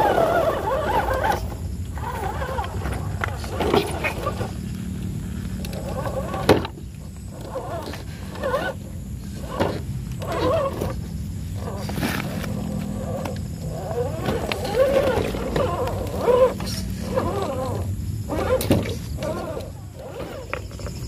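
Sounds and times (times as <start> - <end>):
electric motor and gearbox whining: 0.0 - 21.0.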